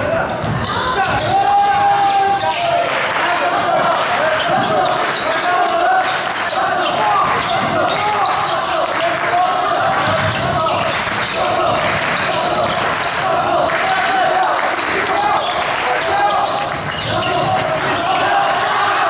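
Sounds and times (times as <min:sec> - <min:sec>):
din of voices: 0:00.0 - 0:19.0
basketball bouncing on wooden floor: 0:00.4 - 0:01.2.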